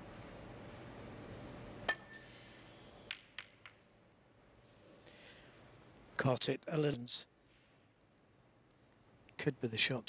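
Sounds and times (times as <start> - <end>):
snooker balls clicking: 3.0 - 4.0.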